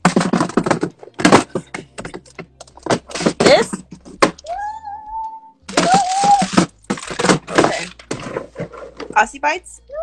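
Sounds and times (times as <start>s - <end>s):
handling clicks and knocks: 0.0s - 4.5s, 5.7s - 9.2s.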